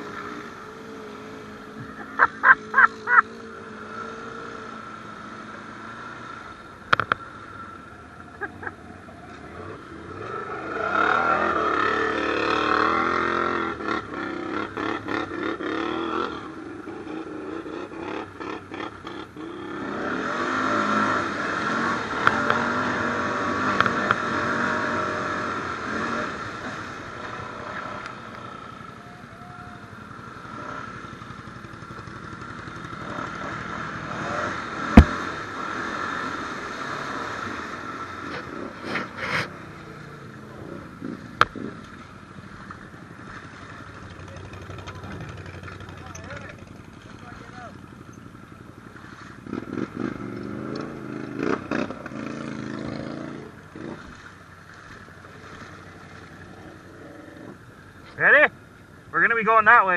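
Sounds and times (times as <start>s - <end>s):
atv engine revving: 0.0s - 59.9s
sharp knock: 35.0s - 35.2s.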